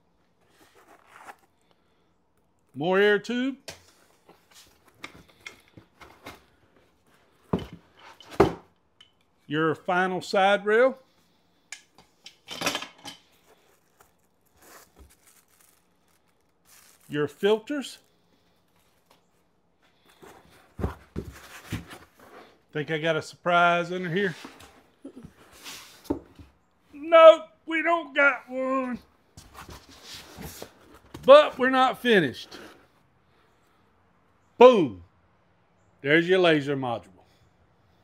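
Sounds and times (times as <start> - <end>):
cardboard box rustling: 13.4 - 17.1, 20.1 - 22.4.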